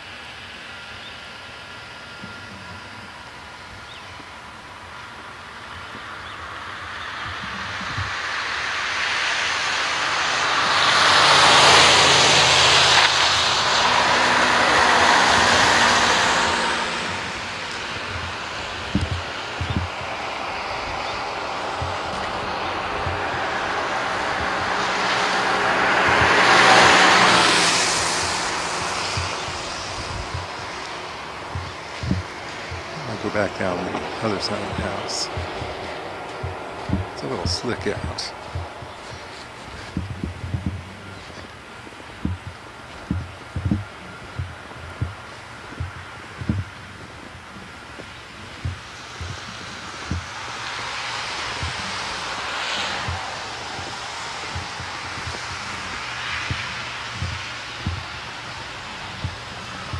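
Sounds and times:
car tyres hissing on snowy road: 0.0 - 59.9
soft thuds: 5.7 - 8.4, 14.7 - 59.9.

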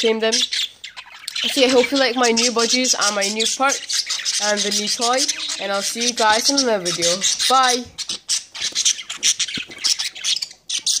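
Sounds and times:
budgerigars squawking and chattering: 0.0 - 11.0.

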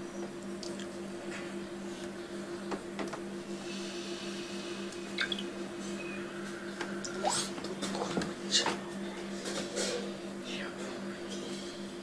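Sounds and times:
low electrical hum: 0.0 - 12.0
faint chirp: 6.0 - 6.7.

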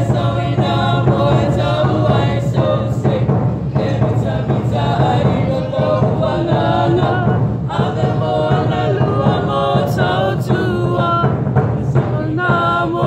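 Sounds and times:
group singing over music: 0.0 - 13.0.

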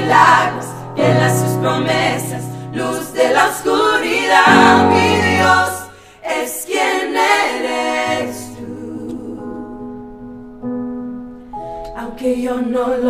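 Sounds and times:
women singing worship song: 0.0 - 10.0, 11.9 - 13.0.

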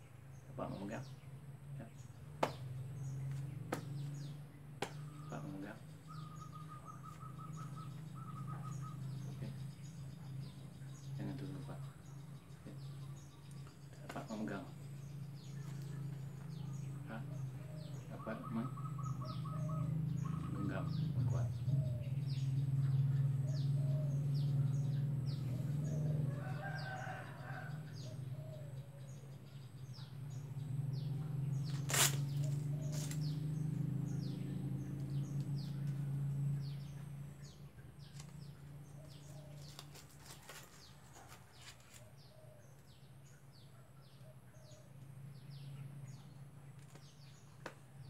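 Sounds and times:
small birds chirping: 0.0 - 48.0
steady low hum: 0.0 - 48.0
rooster crowing: 26.2 - 28.2.

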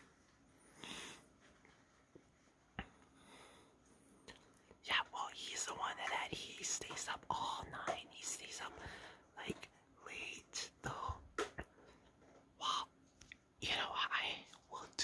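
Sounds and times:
person whispering: 4.8 - 11.6, 12.6 - 13.0, 13.6 - 15.0.

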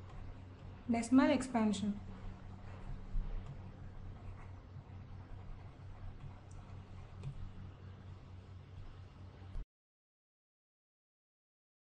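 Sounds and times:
low electrical hum: 0.0 - 9.6.

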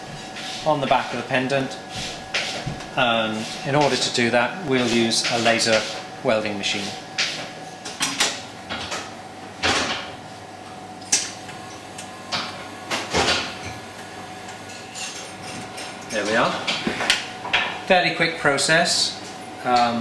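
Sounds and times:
faint machine hum: 0.0 - 20.0.

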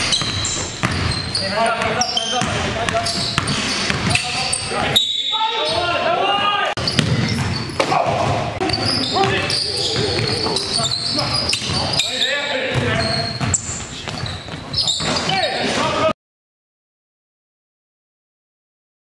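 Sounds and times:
basketball bouncing on hardwood: 0.0 - 4.2, 6.8 - 10.7, 12.7 - 15.2
voices calling out: 0.1 - 16.1.

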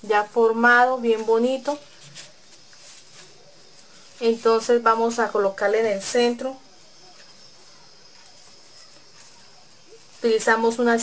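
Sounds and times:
ribbon rustling: 0.0 - 11.0
steady high hiss: 0.0 - 11.0.

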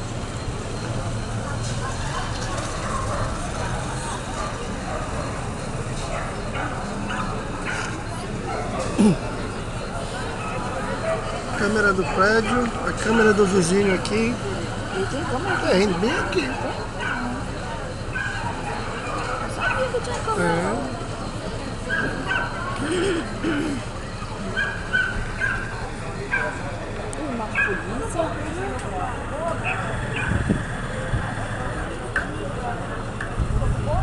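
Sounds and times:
murmur of voices: 0.0 - 34.0
dog barking: 1.5 - 5.4, 6.0 - 8.8, 11.9 - 14.0, 15.4 - 17.4, 18.1 - 20.0, 21.9 - 22.8, 24.6 - 25.7, 26.3 - 26.6, 27.5 - 27.9, 29.6 - 30.5.

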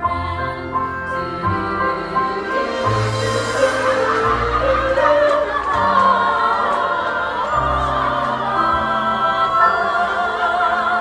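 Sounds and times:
several voices singing together: 0.0 - 11.0
sustained low accompanying notes: 1.2 - 10.4.

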